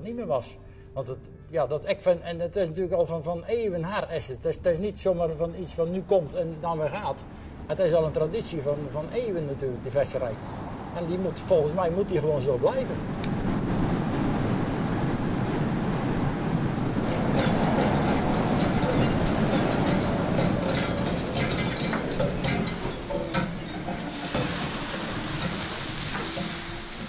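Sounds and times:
boat engine and deck machinery rumble: 0.0 - 27.0
clanking knocks from fishing gear: 17.0 - 26.5
water spray hissing: 21.5 - 27.0.

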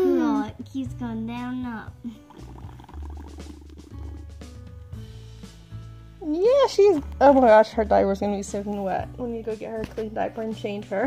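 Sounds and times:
background music: 0.0 - 11.0
doll slurping through straw: 2.2 - 4.2.

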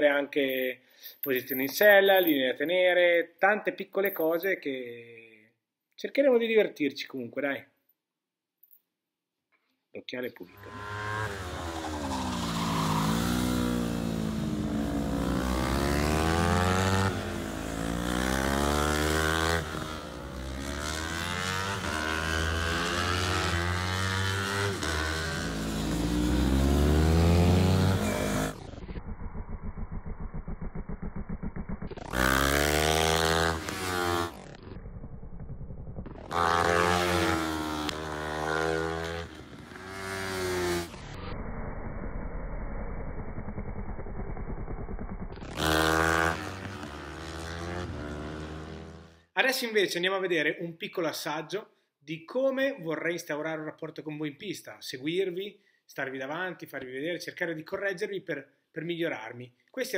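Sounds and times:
motorcycle engines revving: 10.5 - 41.3, 44.7 - 49.2.

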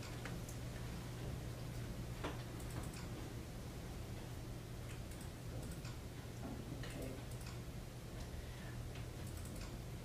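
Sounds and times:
steady low hum: 0.0 - 10.0
computer mouse clicking: 1.7 - 3.2, 4.9 - 6.0, 6.8 - 7.6, 9.0 - 9.8.

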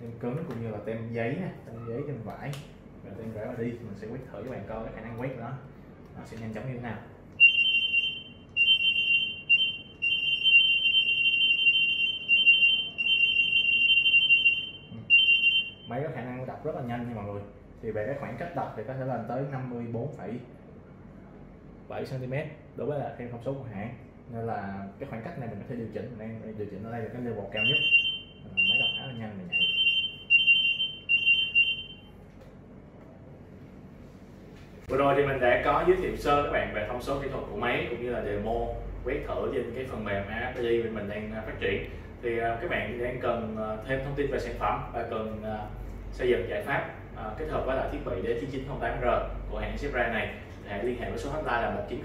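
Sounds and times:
scanner high-pitched beep: 7.4 - 16.0, 27.5 - 32.2
high-pitched scanner beeps: 27.6 - 32.1.

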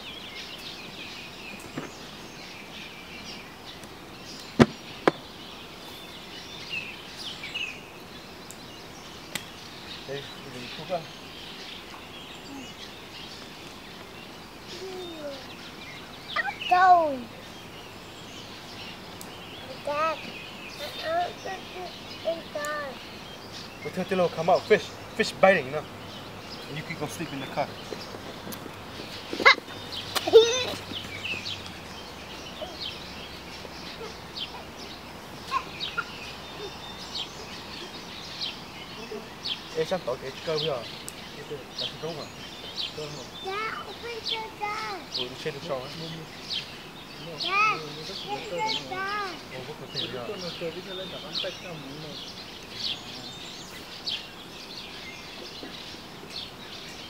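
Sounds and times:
loud bird cries: 0.0 - 57.0
outdoor background hiss: 0.0 - 57.0
small birds chirping: 0.0 - 57.0.

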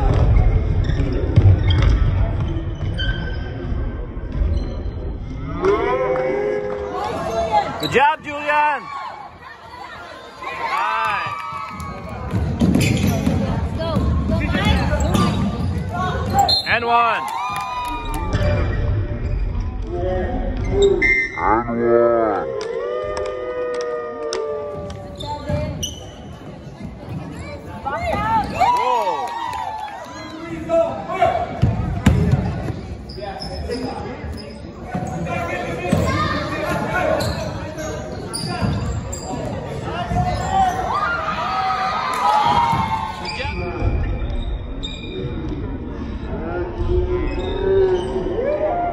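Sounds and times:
shoe squeaks: 0.8 - 3.6, 4.5 - 5.0, 12.7 - 13.4, 14.4 - 16.9, 25.1 - 26.5, 33.0 - 41.1, 43.2 - 45.4
players running on gym floor: 6.9 - 18.5.

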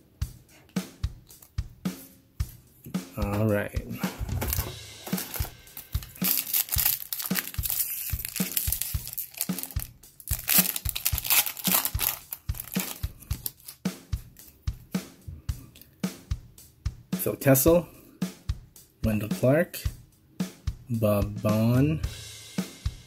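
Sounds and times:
background music with steady beat: 0.0 - 23.0
foil pack crinkling and tearing: 4.4 - 13.8.

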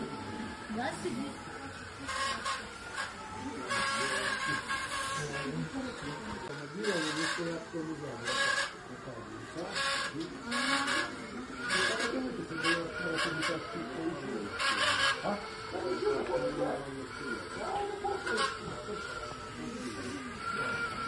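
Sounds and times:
people talking indistinctly: 0.0 - 21.0.

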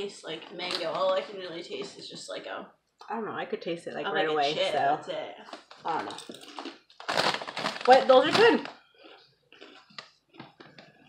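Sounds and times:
plastic bag rustling: 5.5 - 8.8.

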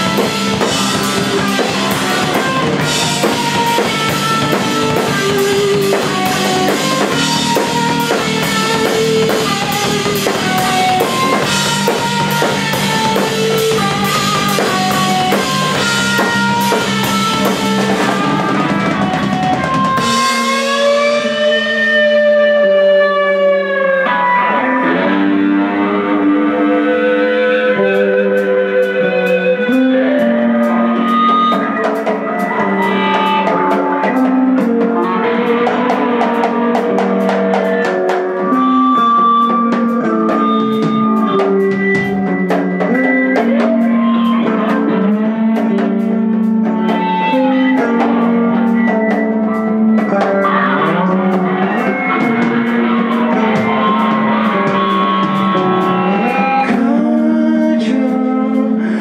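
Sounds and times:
live rock band playing: 0.0 - 59.0
ringing guitar melody: 0.0 - 59.0
steady bass line: 0.0 - 59.0.

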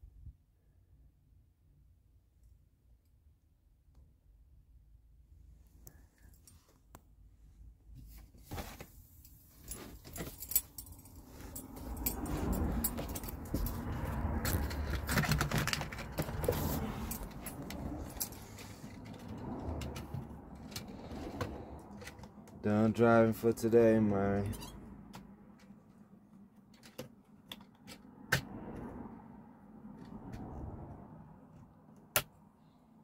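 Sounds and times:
clothing rustling: 7.9 - 19.1
metallic jingling: 9.6 - 14.0
sharp clicks and knocks: 12.0 - 22.6.

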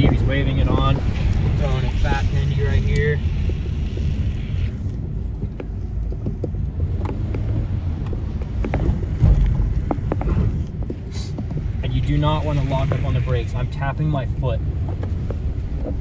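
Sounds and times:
road and wind rumble: 0.0 - 16.0.

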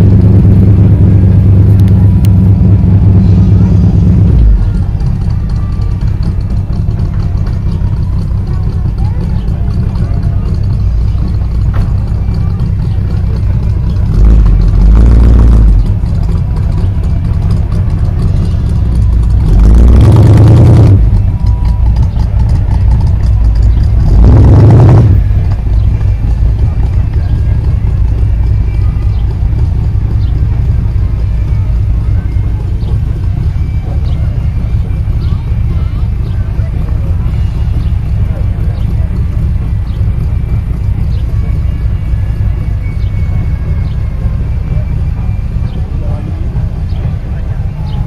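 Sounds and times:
steady low rumble: 0.0 - 48.0.

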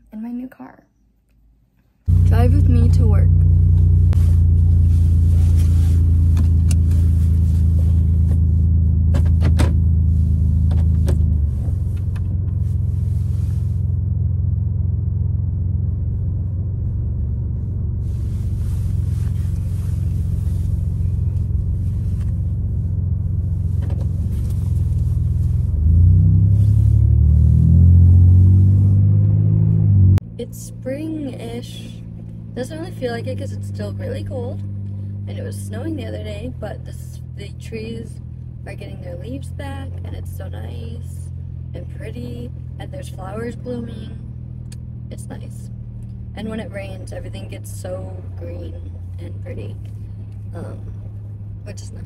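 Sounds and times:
car engine and road rumble: 2.0 - 52.0.

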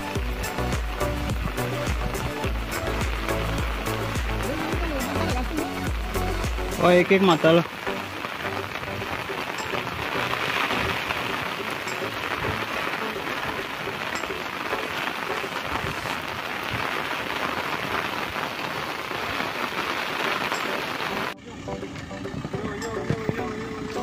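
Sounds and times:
heavy rain falling: 0.0 - 24.0.

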